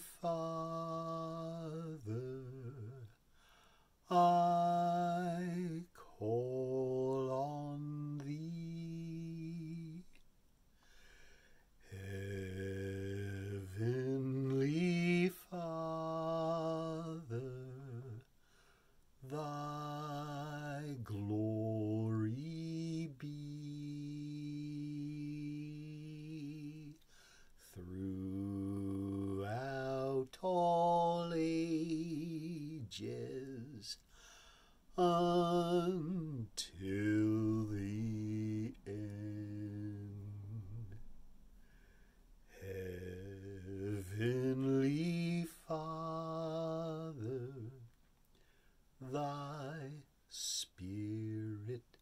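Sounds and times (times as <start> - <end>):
man singing a hymn unaccompanied: 0.0 - 41.1, 42.4 - 52.0.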